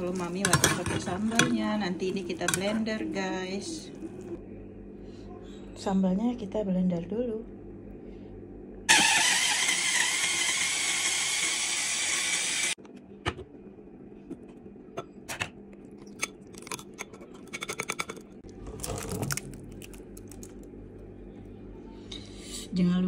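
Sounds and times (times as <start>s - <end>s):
electric mini chopper whirring: 8.9s - 12.8s.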